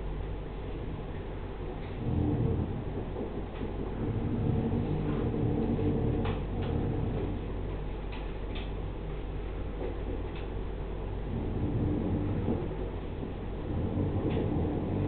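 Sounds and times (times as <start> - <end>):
low room rumble: 0.0 - 15.0.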